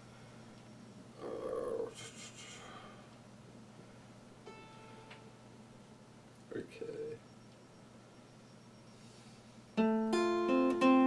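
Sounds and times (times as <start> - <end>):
acoustic guitar strings sound: 9.8 - 11.0.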